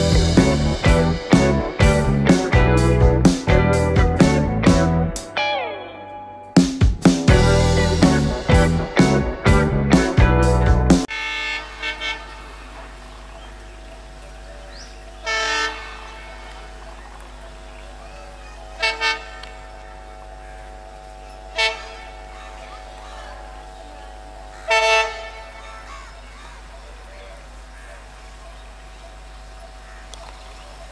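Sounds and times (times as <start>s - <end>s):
steady low background noise: 0.0s - 30.9s
locomotive horn toots: 11.1s - 13.0s, 15.2s - 17.0s, 18.8s - 25.9s.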